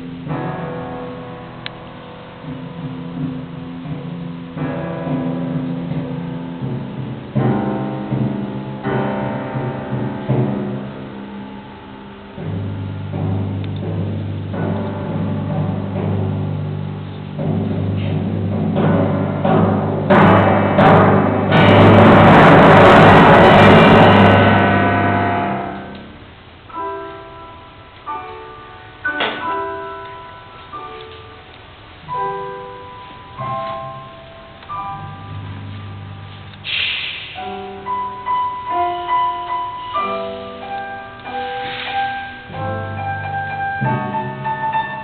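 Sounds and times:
grand piano chords: 0:00.0 - 0:45.0
timpani notes: 0:00.0 - 0:45.0
sustained low note: 0:21.5 - 0:26.2.

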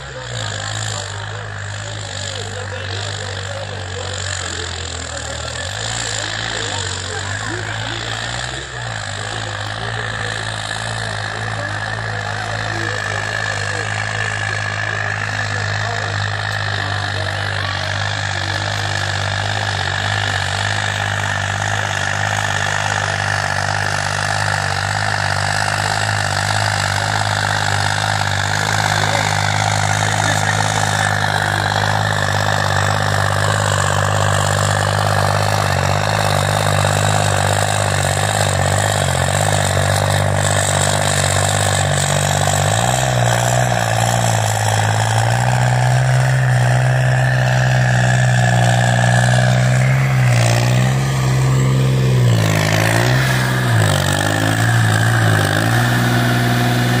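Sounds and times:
tractor diesel engine under load: 0:00.0 - 0:57.0.

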